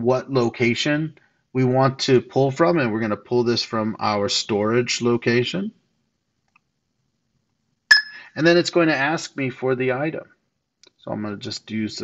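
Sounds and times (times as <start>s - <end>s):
two-note ringing beep: 7.9s - 8.3s.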